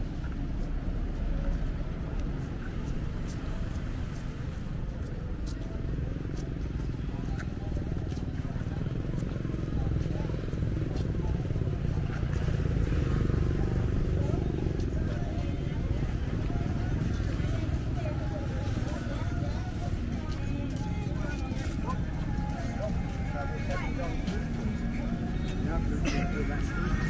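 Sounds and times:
motorbike engines: 0.0s - 27.0s
passers-by talking: 0.0s - 27.0s
traffic rumble: 0.0s - 27.0s.

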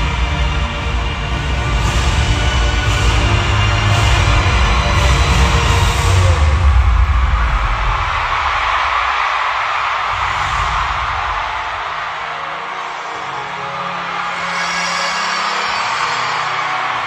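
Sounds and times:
heavy bass: 0.0s - 8.8s
live concert music: 0.0s - 17.0s.

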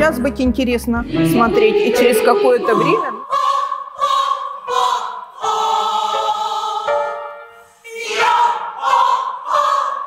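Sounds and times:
choir singing held notes: 1.0s - 10.0s.

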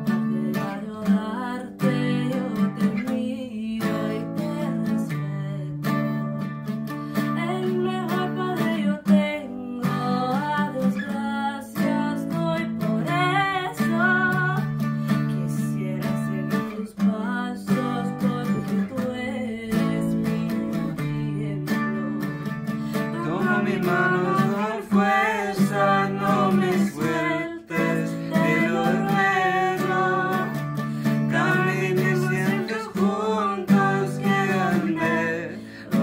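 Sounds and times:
acoustic guitar strumming: 0.0s - 36.0s
person singing: 7.4s - 36.0s.

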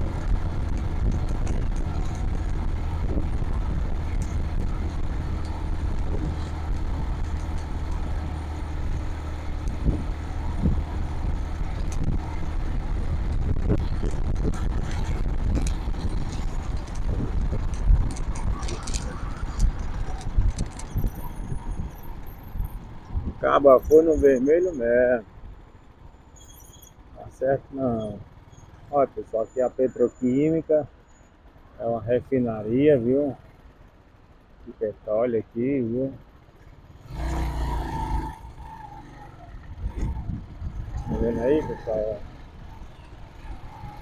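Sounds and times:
motorcycle engine running: 0.0s - 23.4s
wind noise on microphone: 0.0s - 24.7s, 39.5s - 44.0s.

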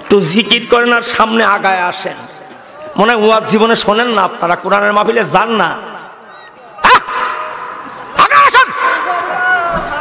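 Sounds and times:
man shouting through loudspeaker: 0.0s - 10.0s.

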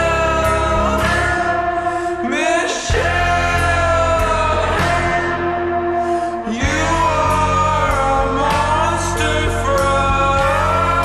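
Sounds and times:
bass: 0.0s - 11.0s
guitar: 0.0s - 11.0s
reverberant sung vocals: 0.0s - 11.0s.

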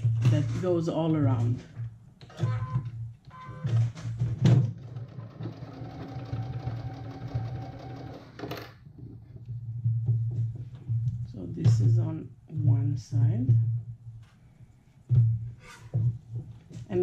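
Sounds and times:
sewing machine running: 4.8s - 8.8s.

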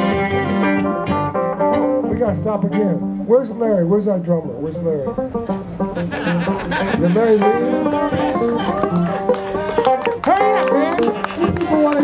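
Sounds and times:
fiddle playing sliding notes: 0.0s - 1.4s, 5.1s - 12.0s
electric bass: 0.0s - 12.0s
plucked string instrument: 0.0s - 12.0s
person speaking: 6.8s - 8.9s.

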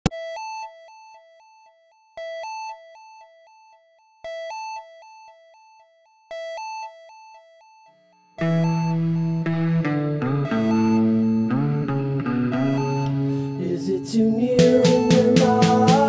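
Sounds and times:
electronic two-tone beeping: 8.4s - 16.0s.

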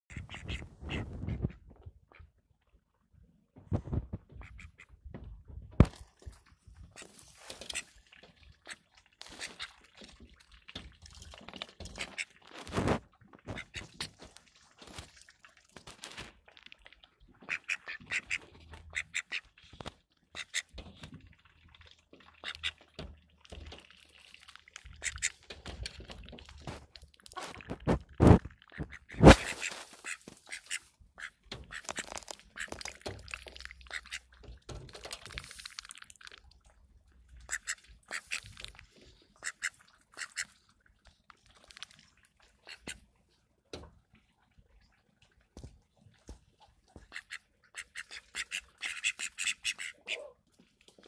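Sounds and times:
ducks quacking: 0.1s - 2.3s, 8.6s - 9.8s, 11.9s - 12.4s, 13.4s - 14.1s, 17.4s - 19.6s, 20.3s - 20.8s, 22.3s - 22.9s, 24.8s - 25.4s, 27.3s - 32.8s, 33.8s - 34.3s, 37.4s - 38.7s, 39.4s - 40.5s, 47.0s - 50.4s.

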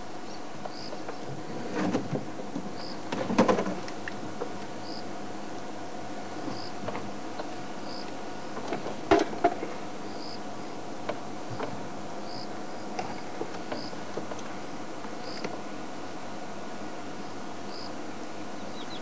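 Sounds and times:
insects chirping: 0.2s - 1.2s, 2.7s - 3.0s, 4.8s - 5.2s, 6.3s - 6.8s, 7.8s - 8.6s, 10.0s - 10.8s, 11.5s - 14.0s, 15.2s - 16.2s, 17.2s - 18.0s.

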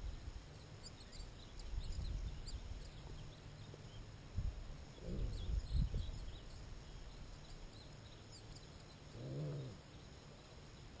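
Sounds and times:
small birds chirping: 0.0s - 11.0s
grunt-like animal call: 5.0s - 5.5s, 9.1s - 9.8s.

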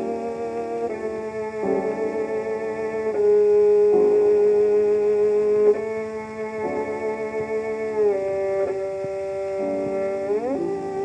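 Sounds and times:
quiet piano chords: 0.0s - 11.0s
record surface hiss: 0.0s - 11.0s
violin: 0.0s - 11.0s.

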